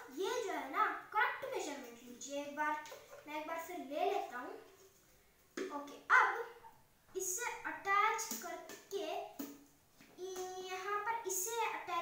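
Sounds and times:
boy talking: 0:00.0 - 0:04.7, 0:05.6 - 0:09.4, 0:10.1 - 0:12.0.

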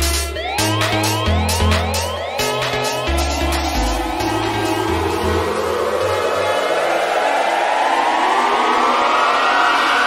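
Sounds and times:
synth riser climbing in pitch: 0:00.3 - 0:10.0.

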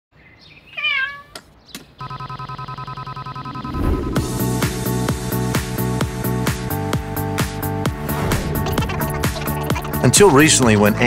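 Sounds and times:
kitten meowing: 0:00.8 - 0:01.4.

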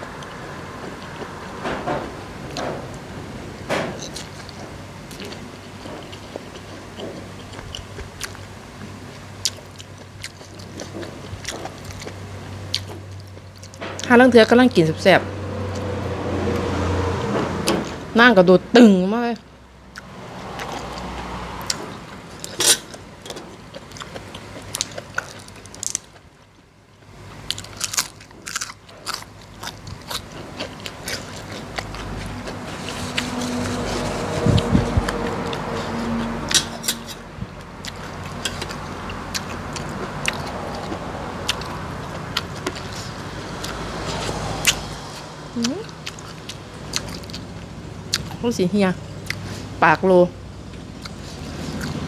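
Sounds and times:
steady low hum: 0:00.0 - 0:52.0
crunchy chewing on vegetable: 0:04.0 - 0:14.1, 0:19.9 - 0:48.6, 0:49.2 - 0:49.8, 0:50.6 - 0:52.0.

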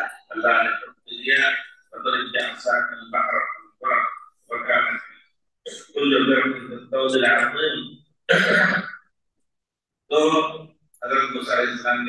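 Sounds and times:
man lecturing: 0:00.0 - 0:09.0, 0:10.0 - 0:12.0.

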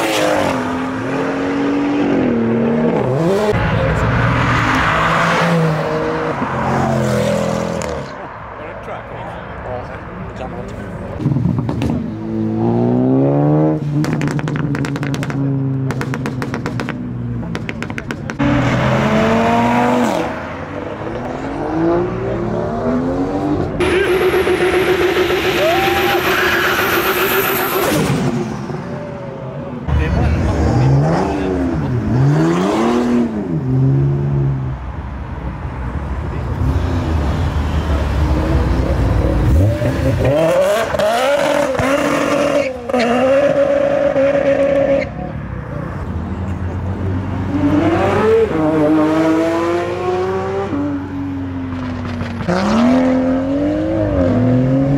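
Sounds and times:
car engines revving: 0:00.0 - 0:54.9.

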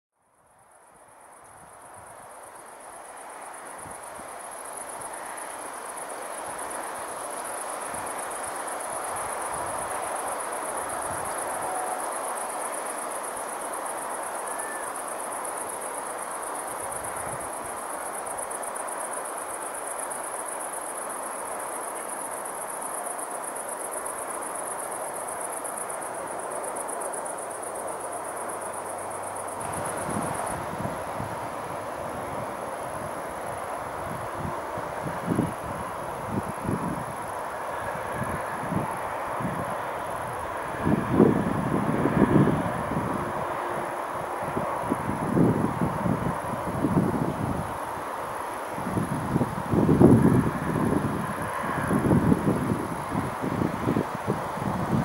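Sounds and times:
crickets trilling: 0:00.3 - 0:55.0.

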